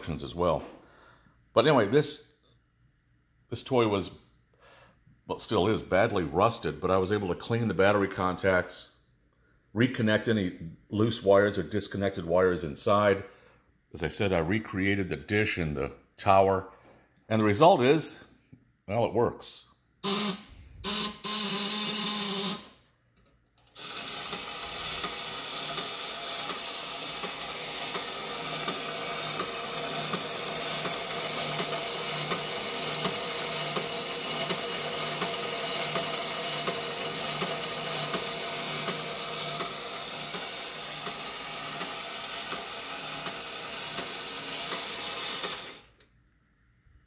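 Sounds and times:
toy motor whirring: 20.0s - 22.8s, 23.6s - 46.0s
toy mechanism clicking: 23.6s - 45.9s.

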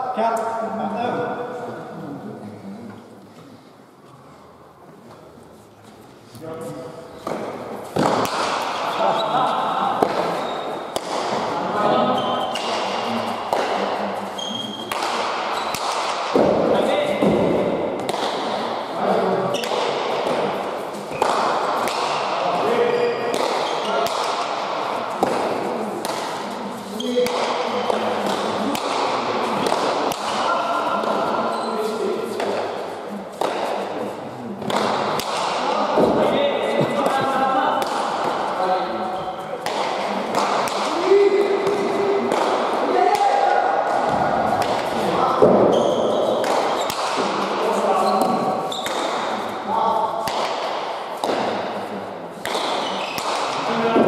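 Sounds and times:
voices of players and spectators: 0.0s - 54.0s
ball smacks echoing off walls: 7.2s - 54.0s.

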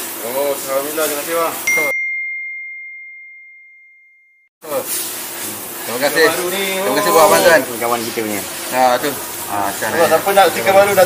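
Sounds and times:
high ringing ding: 1.7s - 4.5s.

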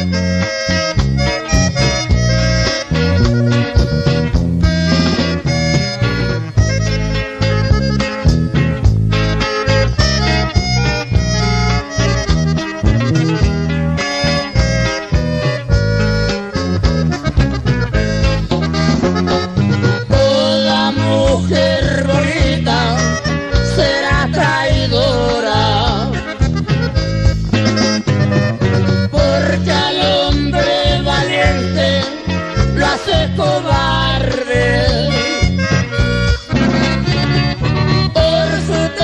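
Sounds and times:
accordion melody: 0.0s - 39.0s
bass and guitar accompaniment: 0.0s - 39.0s.

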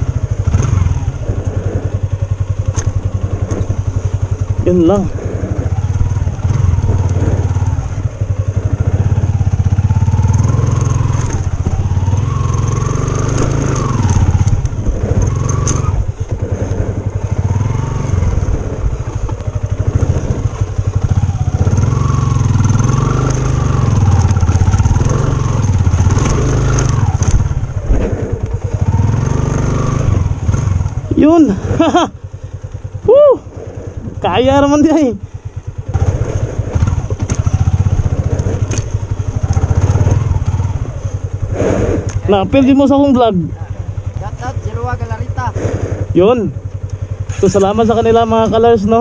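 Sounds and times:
motorcycle engine labouring: 0.0s - 49.0s.

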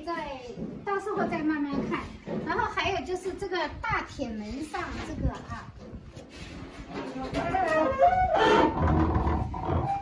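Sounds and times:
heavy iron door creaking shut: 7.3s - 10.0s.

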